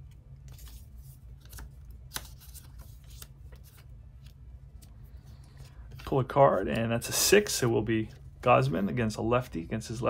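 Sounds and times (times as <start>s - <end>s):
paper cards rustling: 0.0s - 8.8s.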